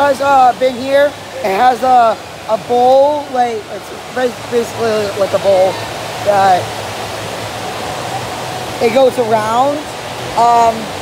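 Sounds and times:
rushing water in indoor water park: 0:00.0 - 0:11.0.

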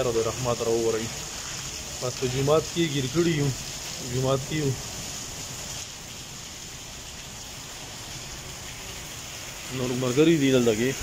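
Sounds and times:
rain on wet pavement: 0:00.0 - 0:11.0.

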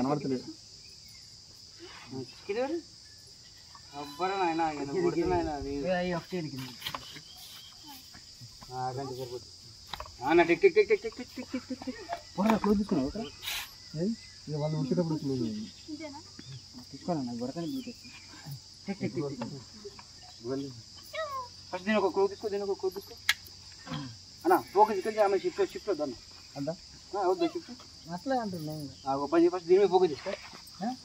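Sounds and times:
high-pitched insect drone: 0:00.0 - 0:31.0
voices talking: 0:00.0 - 0:31.0.

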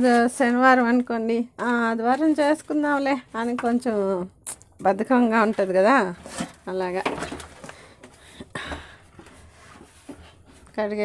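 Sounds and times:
plastic tub knocking and scraping: 0:04.8 - 0:11.0.

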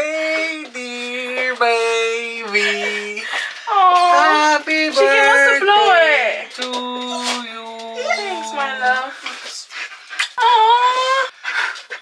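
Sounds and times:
dog whining: 0:07.0 - 0:08.8.

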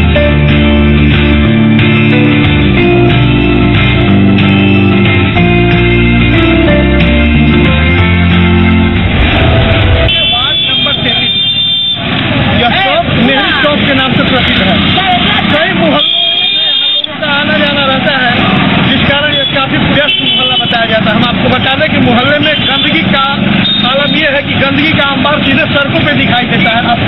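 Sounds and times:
street and traffic noise: 0:00.0 - 0:27.0.

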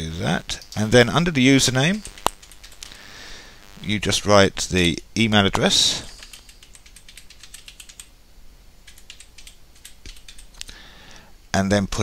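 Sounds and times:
computer keyboard typing: 0:01.9 - 0:03.0, 0:06.1 - 0:08.1, 0:08.8 - 0:10.7.

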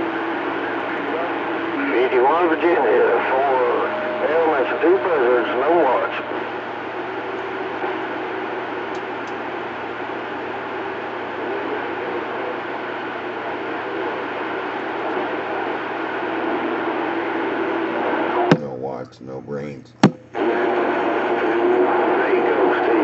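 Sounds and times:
faint steady tones: 0:00.0 - 0:23.0
radio static hiss: 0:00.0 - 0:23.0.

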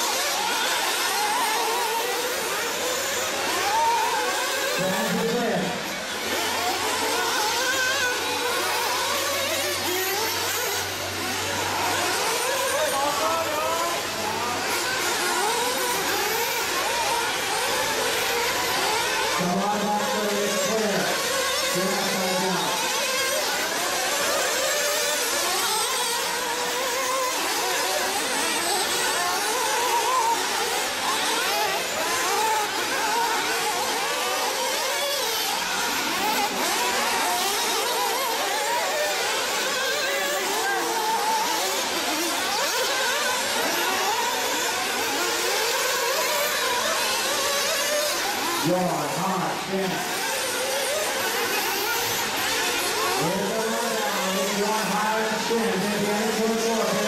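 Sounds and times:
rc buggy engines whining: 0:00.0 - 0:57.0.

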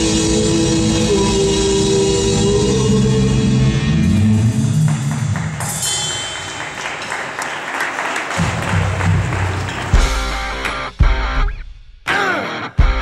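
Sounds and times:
heavy metal band playing: 0:00.0 - 0:06.6, 0:08.4 - 0:13.0
drums and cymbals wash: 0:00.0 - 0:07.4, 0:08.2 - 0:13.0.

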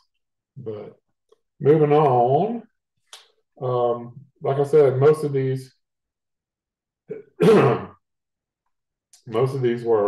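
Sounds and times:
man clearing his throat: 0:07.1 - 0:08.0.

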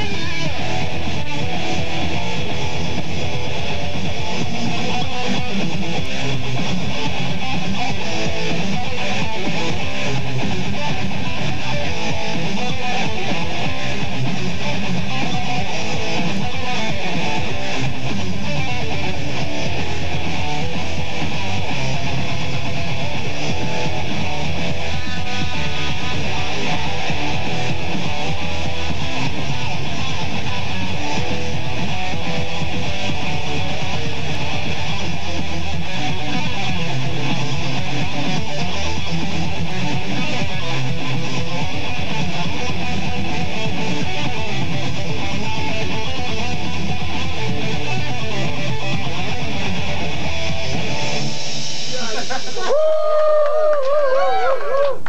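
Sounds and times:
strummed electric guitar: 0:00.0 - 0:55.0.

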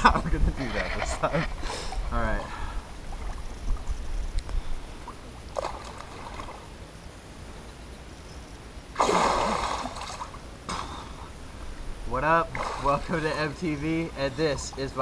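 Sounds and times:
water splashing: 0:00.0 - 0:04.2, 0:05.0 - 0:06.8, 0:08.9 - 0:11.5, 0:12.1 - 0:15.0.

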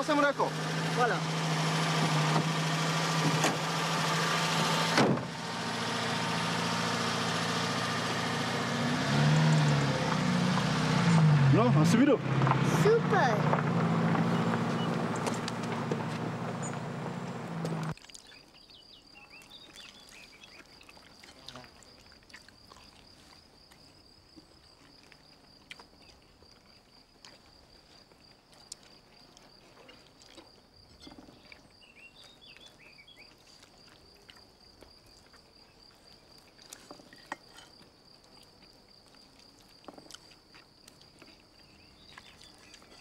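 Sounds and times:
faint bird chirps: 0:18.2 - 0:20.9, 0:30.9 - 0:33.4.

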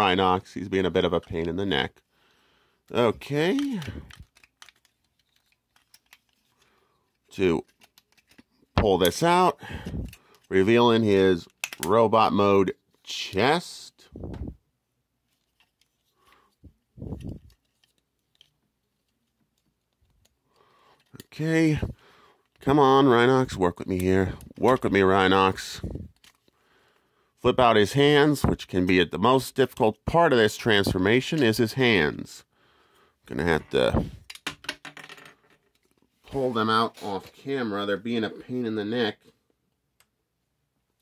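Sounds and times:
plastic toy clicks and handling: 0:03.4 - 0:10.5, 0:11.4 - 0:12.0
plastic toy parts clicking: 0:03.5 - 0:06.6, 0:11.4 - 0:11.9.

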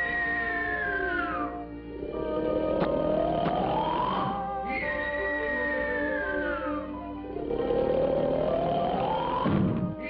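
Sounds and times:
cartoon orchestral music: 0:00.0 - 0:10.0
sliding whistle-like tone: 0:03.4 - 0:10.0.

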